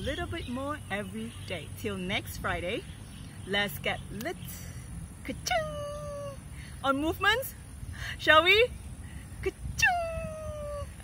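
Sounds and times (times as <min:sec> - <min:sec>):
high-pitched voiced cry: 0:09.6 - 0:11.0.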